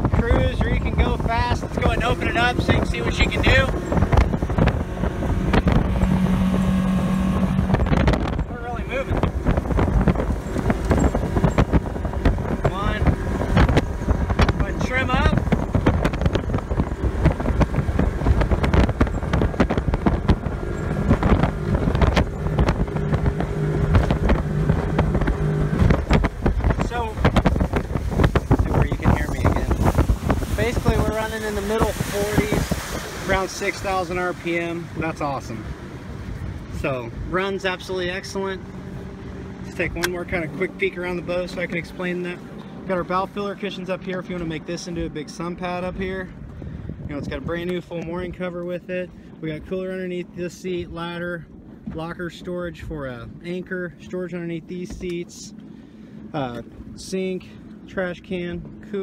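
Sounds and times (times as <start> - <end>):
water rushing past hull: 0.0 - 48.4
boat engine at full throttle: 0.0 - 59.0
wind buffeting microphone: 0.0 - 59.0.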